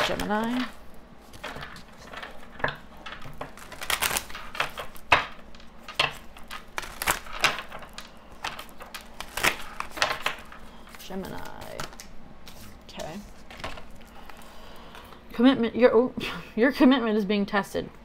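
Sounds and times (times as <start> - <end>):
cards being shuffled: 0.0 - 15.0.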